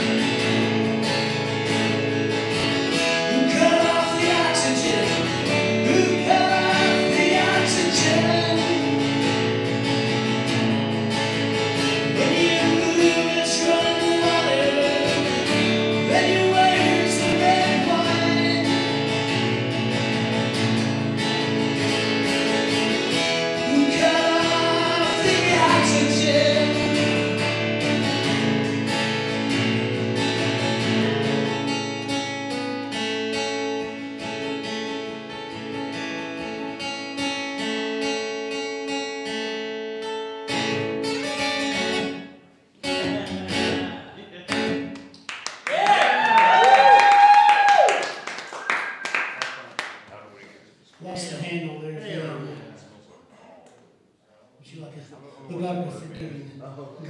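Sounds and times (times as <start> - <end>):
strummed guitar chords: 0.0 - 45.2
person singing: 3.3 - 9.0, 12.1 - 19.1, 23.6 - 27.3.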